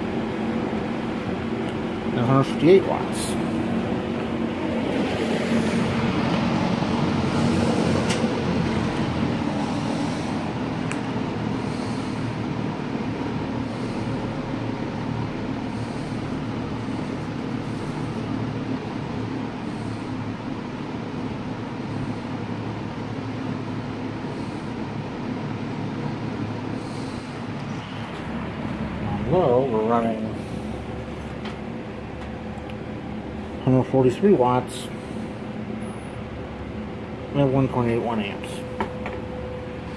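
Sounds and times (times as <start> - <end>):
box fan air rush: 0.0 - 39.9
fan motor hum: 0.0 - 39.9.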